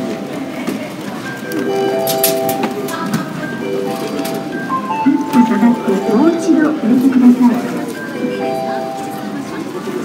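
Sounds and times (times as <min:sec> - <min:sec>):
electronic chime tones: 0:01.2 - 0:09.4.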